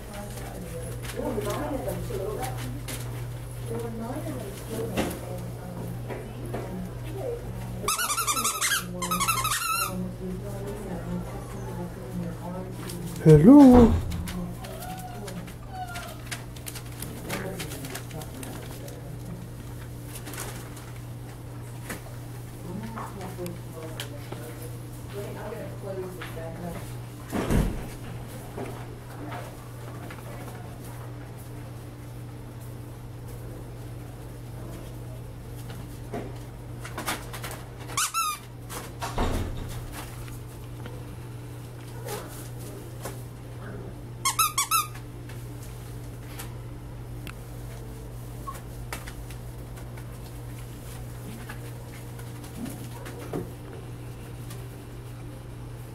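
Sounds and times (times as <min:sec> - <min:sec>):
paws scratching on newspaper: 0:00.0 - 0:13.2, 0:14.2 - 0:27.1, 0:27.9 - 0:39.0, 0:39.8 - 0:43.8, 0:47.4 - 0:55.9
squeaky dog toy squeaks: 0:07.9 - 0:09.9, 0:44.3 - 0:44.9
puppies whimpering: 0:14.6 - 0:16.3.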